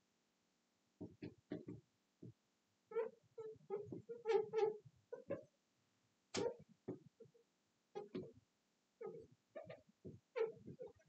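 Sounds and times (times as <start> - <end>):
marker squeaking on glass: 2.9 - 5.5, 8.0 - 8.3, 9.0 - 11.0.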